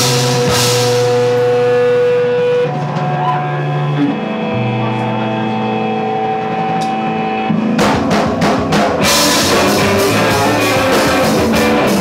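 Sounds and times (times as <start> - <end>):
bass guitar: 0.0 - 12.0
electric guitar: 0.0 - 12.0
drum fill: 6.4 - 12.0.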